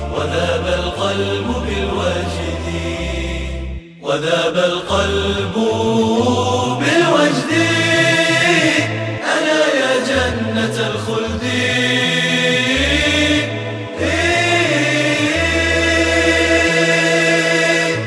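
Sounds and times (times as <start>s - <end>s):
low vocal bass line: 0.0s - 3.8s, 4.6s - 18.0s
male voices chanting melody: 0.0s - 18.0s.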